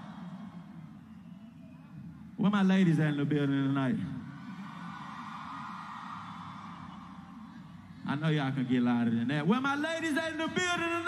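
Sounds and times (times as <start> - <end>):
crowd cheering and screaming: 0.0 - 2.1, 3.9 - 8.8.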